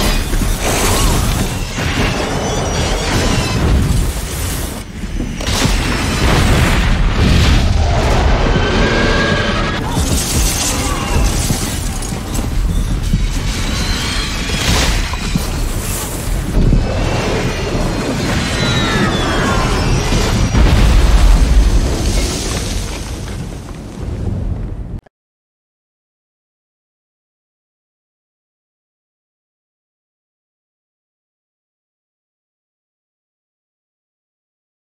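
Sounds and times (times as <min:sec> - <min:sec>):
crashing and crunching rumble: 0:00.0 - 0:25.0.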